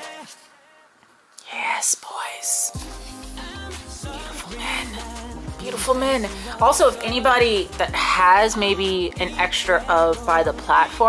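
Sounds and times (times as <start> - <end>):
pop music with heavy bass: 0.0 - 0.5, 2.7 - 11.0
breathy whispered voice: 1.4 - 7.0.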